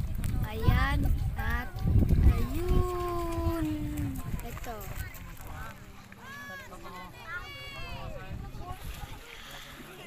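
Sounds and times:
wind and surf rumble: 0.0 - 5.7, 7.2 - 9.4.

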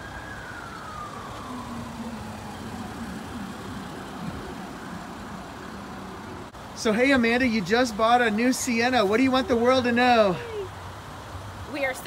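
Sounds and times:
faint siren wailing: 0.0 - 6.6, 7.4 - 10.8
traffic noise: 0.0 - 12.0.

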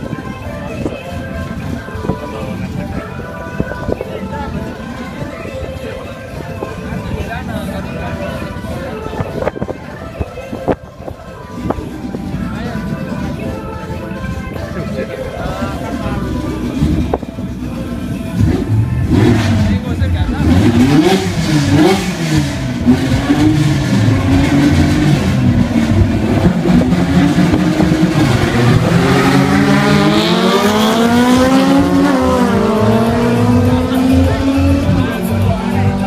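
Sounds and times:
race car engines revving: 0.0 - 36.0.

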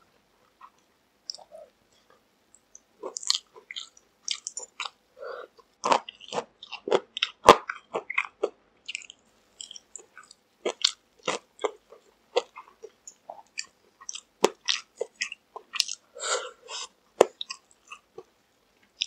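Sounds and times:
crunchy chewing of fried chicken: 3.0 - 19.0.

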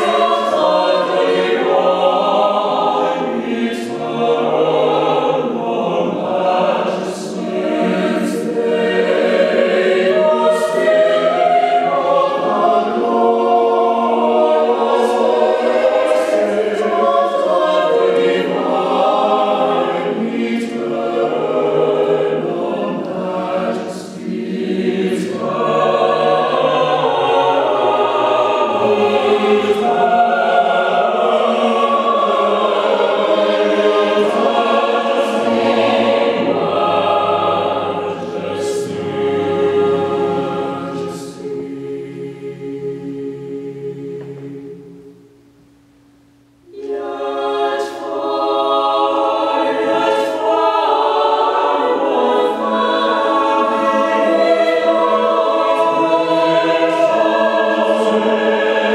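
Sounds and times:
mixed choir singing unaccompanied: 0.0 - 45.4, 46.7 - 58.9.

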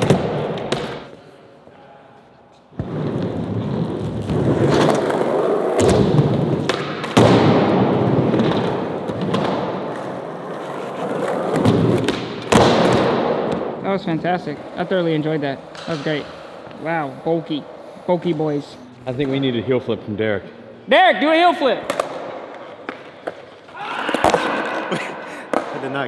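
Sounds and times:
skateboard wheels rolling: 2.8 - 13.1.

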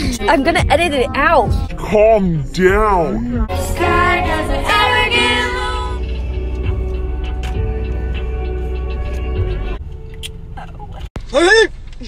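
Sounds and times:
bass-heavy music on car stereo: 0.0 - 9.8
girl singing along: 3.5 - 6.0.

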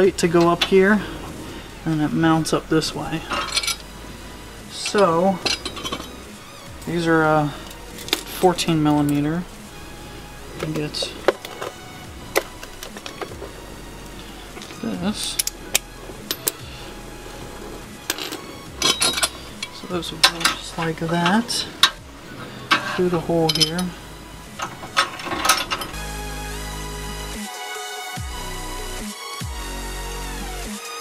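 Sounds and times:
steady low hum: 0.0 - 27.4
metallic clicks and rattles: 3.2 - 3.9, 18.0 - 26.0.

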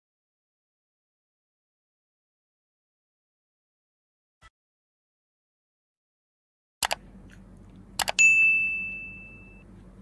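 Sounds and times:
bright bell ding: 8.2 - 9.6.

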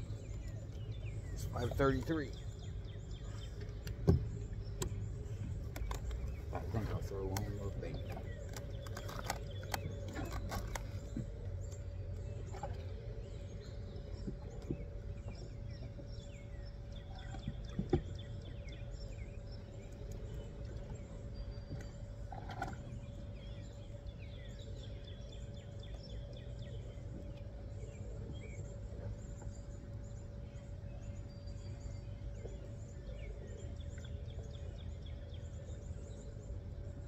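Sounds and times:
small birds chirping: 0.0 - 37.0
steady low rumble: 0.0 - 37.0.

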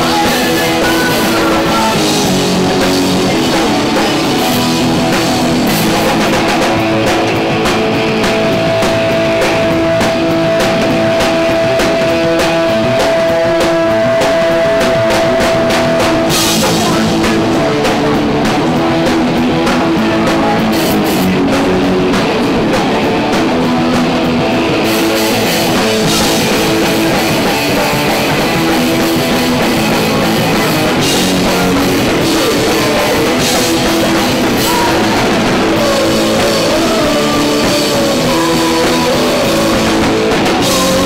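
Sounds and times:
bass guitar: 0.0 - 41.0
distorted electric guitar: 0.0 - 41.0
drum kit with crashing cymbals: 0.0 - 41.0.

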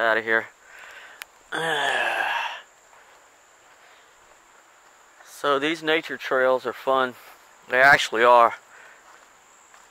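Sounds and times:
man sighing: 1.5 - 2.7.

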